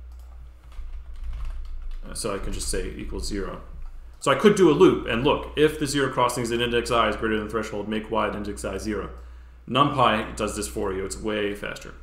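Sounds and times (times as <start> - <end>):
low steady hum: 0.0 - 12.0
computer keyboard typing: 0.1 - 3.2.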